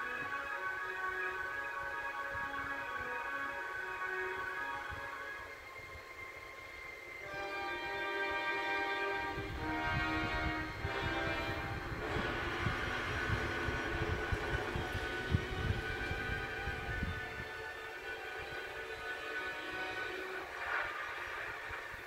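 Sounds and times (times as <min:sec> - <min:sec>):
held horn-like chord: 0:00.0 - 0:06.0, 0:07.2 - 0:20.8
low rumble: 0:09.2 - 0:17.5.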